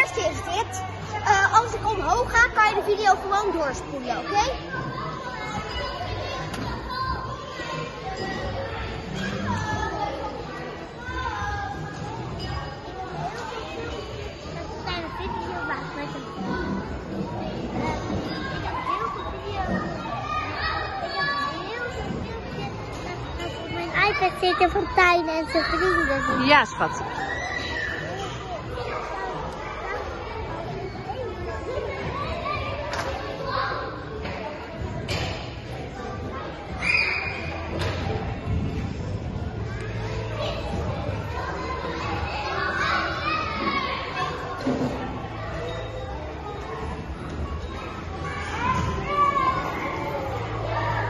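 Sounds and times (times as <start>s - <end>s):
children calling and shouting: 0.0s - 51.0s.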